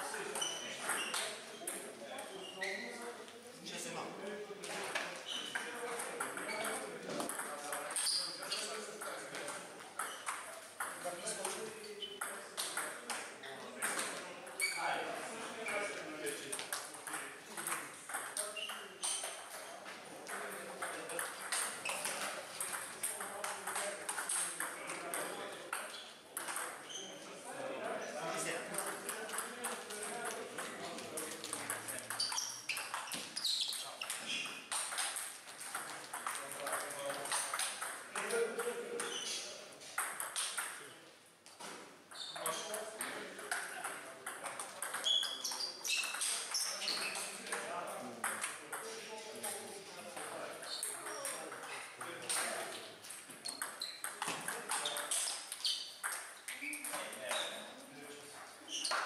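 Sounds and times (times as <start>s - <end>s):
ping-pong ball clicks: 16.7s - 19.4s, 28.8s - 39.1s, 40.0s - 40.8s, 42.4s - 46.6s, 53.4s - 57.4s.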